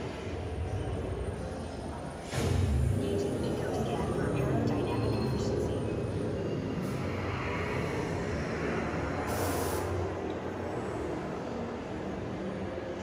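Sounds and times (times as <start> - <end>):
short hiss: 9.3 - 10.0.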